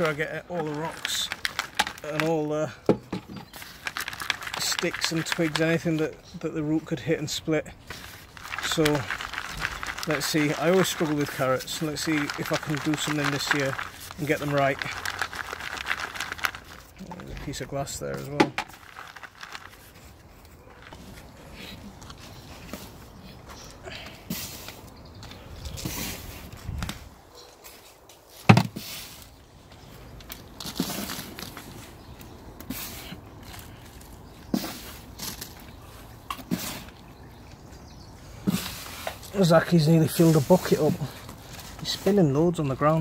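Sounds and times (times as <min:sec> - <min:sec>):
soil rustling and pattering: 0:00.0 - 0:43.0.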